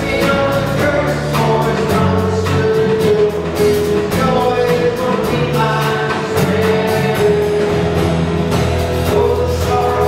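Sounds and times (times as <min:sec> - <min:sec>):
drum kit played lightly: 0:00.0 - 0:10.0
voices singing along: 0:00.0 - 0:10.0.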